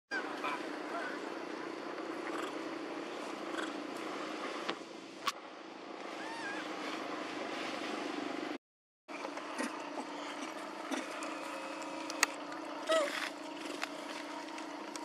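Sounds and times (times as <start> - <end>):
outdoor background hum: 0.1 - 15.0.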